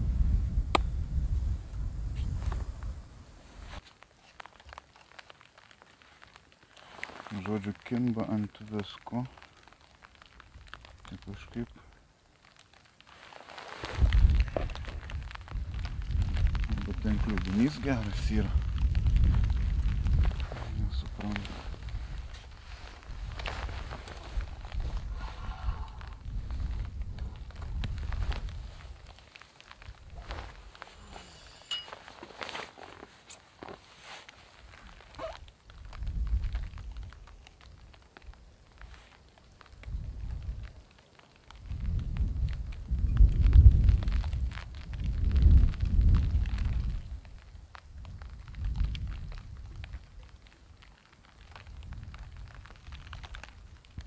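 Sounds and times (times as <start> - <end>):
wind buffeting microphone: 0.0 - 3.8, 13.8 - 29.2, 34.9 - 37.3, 39.7 - 40.8, 41.6 - 50.1, 51.6 - 54.0.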